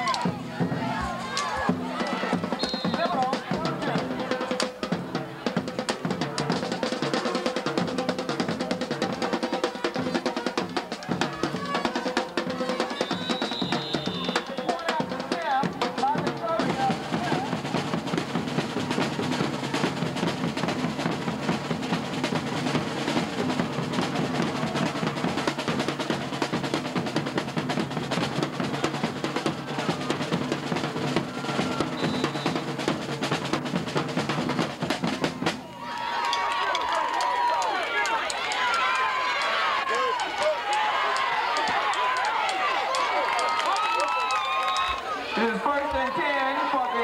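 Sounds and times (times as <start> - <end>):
crowd shouting: 0.0 - 18.2, 22.7 - 26.6, 28.4 - 32.8, 35.1 - 47.0
drumline playing snare and bass drums: 0.0 - 35.7.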